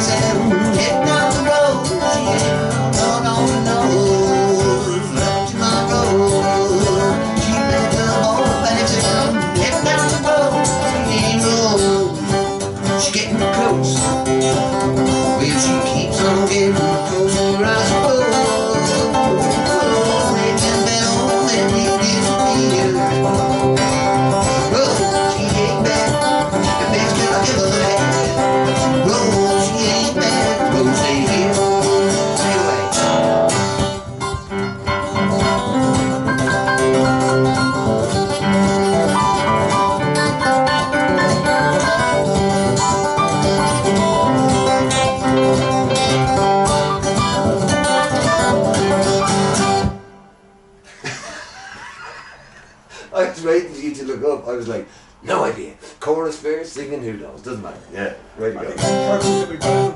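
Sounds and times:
acoustic guitar: 0.0s - 59.9s
digital piano: 18.0s - 50.3s.

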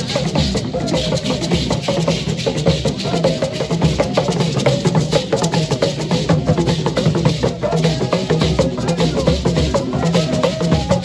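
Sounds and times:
drums playing fast rhythm: 0.0s - 11.0s.

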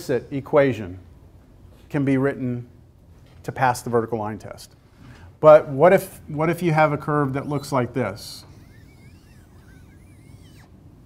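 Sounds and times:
marker squeaking on whiteboard: 7.3s - 10.7s.

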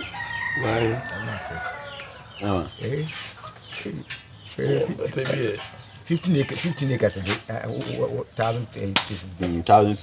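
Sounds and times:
rooster crowing: 0.0s - 2.4s, 6.3s - 7.4s
men talking low: 0.0s - 10.0s.

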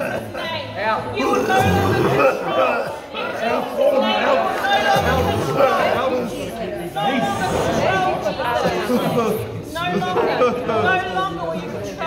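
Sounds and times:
people praying aloud: 0.0s - 12.0s.

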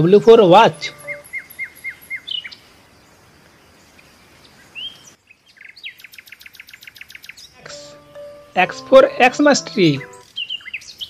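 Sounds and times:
short chirps: 0.7s - 1.4s.

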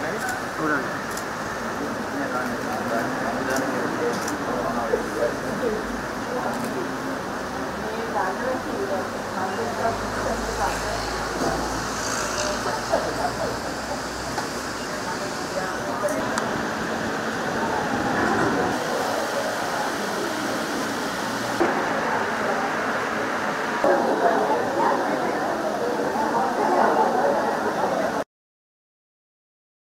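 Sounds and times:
background chatter: 0.0s - 28.2s.

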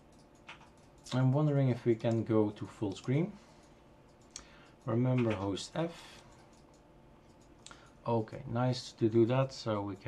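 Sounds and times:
computer mouse click: 0.0s - 1.3s, 6.3s - 8.0s.

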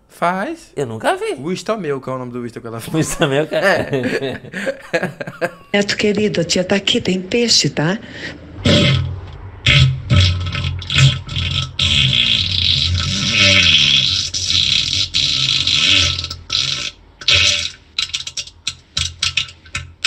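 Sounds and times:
farts: 8.6s - 17.8s.

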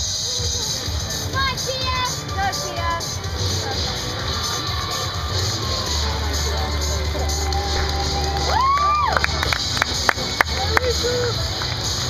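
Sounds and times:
crowd chatter: 0.0s - 12.0s
music over sound system: 0.0s - 12.0s.

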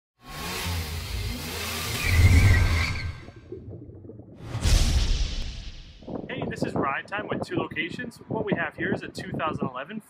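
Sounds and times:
whoosh: 4.4s - 6.2s.

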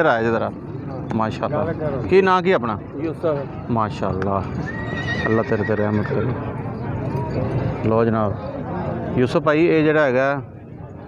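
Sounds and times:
horse whinnying: 4.5s - 6.4s.

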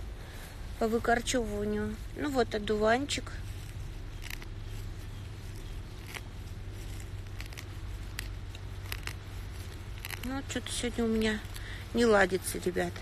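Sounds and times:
low steady rumble: 0.0s - 13.0s
weeding tool scraping soil: 0.8s - 13.0s.

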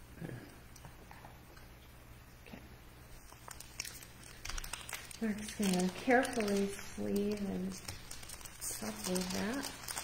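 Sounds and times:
foil wrapper crinkling: 3.1s - 10.0s.

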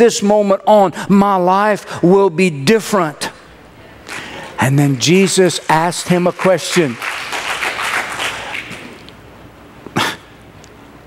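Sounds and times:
congregation clapping: 4.0s - 9.1s.

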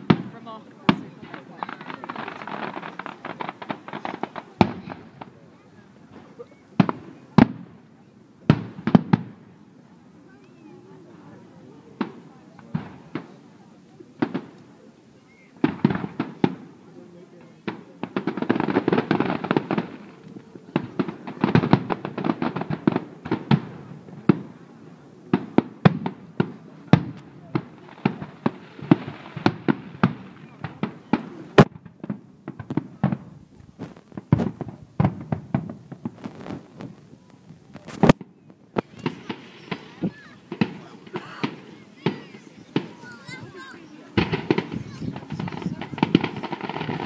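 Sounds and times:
fireworks bursting: 0.0s - 47.0s.

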